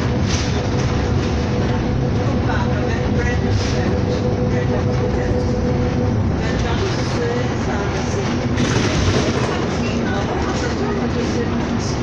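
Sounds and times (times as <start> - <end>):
steady whine: 0.0 - 11.9
bus engine and road rumble: 0.0 - 12.0.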